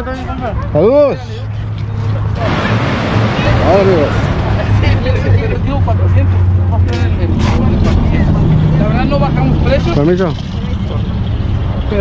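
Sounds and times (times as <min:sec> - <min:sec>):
people talking: 0:00.0 - 0:11.2.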